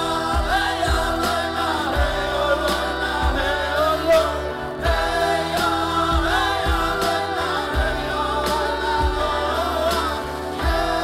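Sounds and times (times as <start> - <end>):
live band backing: 0.0 - 11.0
woman singing: 0.0 - 11.0.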